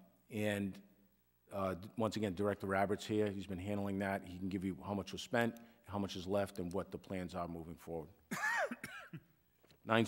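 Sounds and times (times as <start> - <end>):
man clearing his throat: 8.3 - 9.3.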